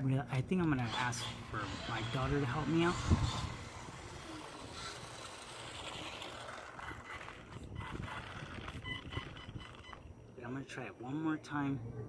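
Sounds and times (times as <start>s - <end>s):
tyres rushing over gravel: 1.6s - 8.8s.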